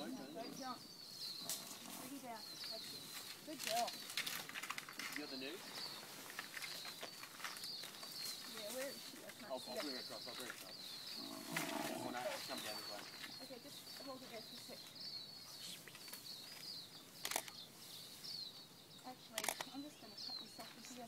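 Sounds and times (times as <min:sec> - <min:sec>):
high chirping bird calls: 0:00.0 - 0:21.0.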